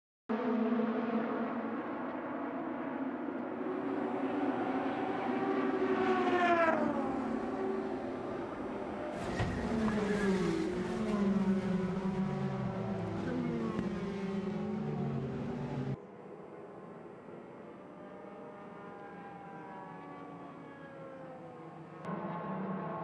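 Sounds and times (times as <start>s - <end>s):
racing car engines passing: 0.3s - 23.0s.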